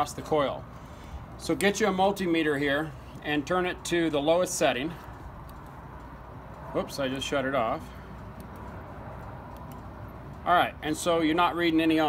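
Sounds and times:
multimeter clicks: 0:09.4 - 0:10.4.

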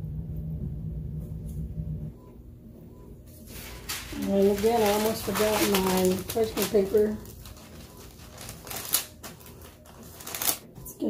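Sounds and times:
parchment paper crackling: 0:03.4 - 0:10.7.

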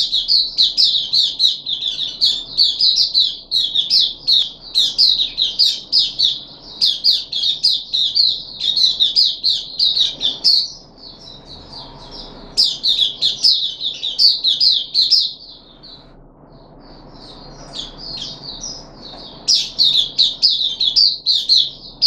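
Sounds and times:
bird singing high chirps: 0:00.0 - 0:22.0.

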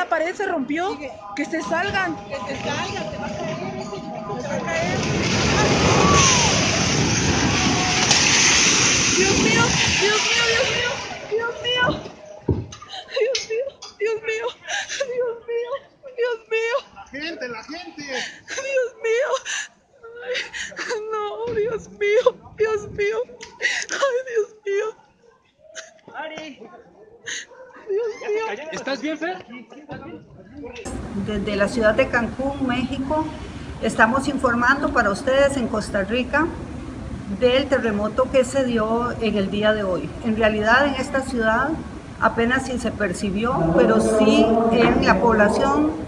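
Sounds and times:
rumble of falling concrete: 0:04.7 - 0:11.3.

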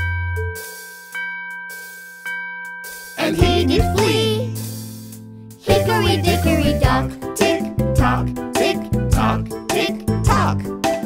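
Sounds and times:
clock bell chiming: 0:00.0 - 0:04.2.

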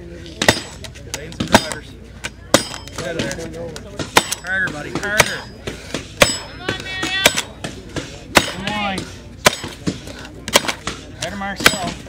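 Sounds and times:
axe chopping wood: 0:00.4 - 0:01.8, 0:02.5 - 0:03.4, 0:04.0 - 0:12.0.

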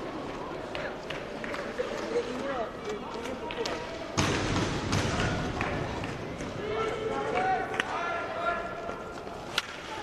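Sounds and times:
skate wheels rolling: 0:00.0 - 0:04.1
hockey sticks clacking: 0:00.6 - 0:04.0, 0:05.0 - 0:10.0.

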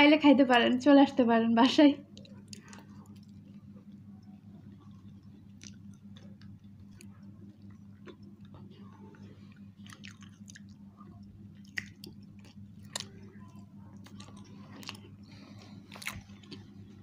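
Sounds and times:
steady low hum: 0:00.0 - 0:17.0
people chewing: 0:02.1 - 0:17.0.

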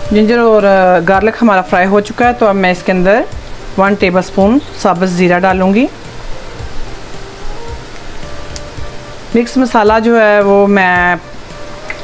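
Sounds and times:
faint music: 0:00.0 - 0:12.0
food sizzling in hot oil: 0:00.0 - 0:12.0.

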